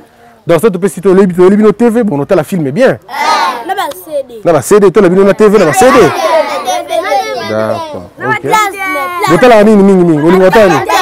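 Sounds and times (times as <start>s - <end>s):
children chanting: 3.1s - 3.7s, 5.8s - 8.0s.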